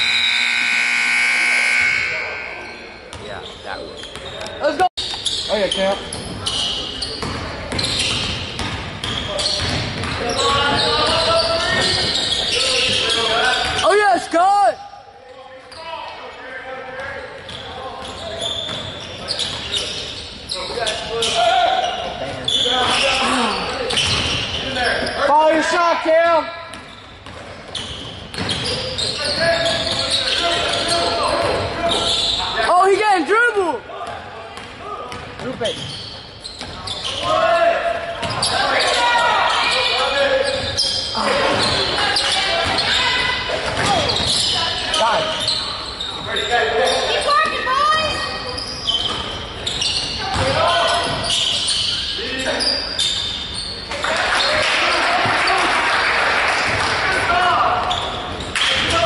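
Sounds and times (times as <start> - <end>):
shoes squeaking: 0.0 - 14.3, 17.0 - 25.8, 26.7 - 33.7, 34.6 - 55.6, 57.3 - 59.0
spectators' voices echoing: 0.1 - 4.8, 5.6 - 26.8, 28.7 - 35.8, 53.9 - 59.0
basketball bouncing on hardwood: 8.6 - 10.2.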